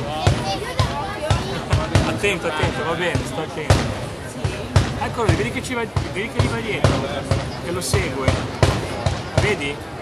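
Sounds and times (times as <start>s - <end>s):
loud black-powder bangs: 3.2s - 9.9s.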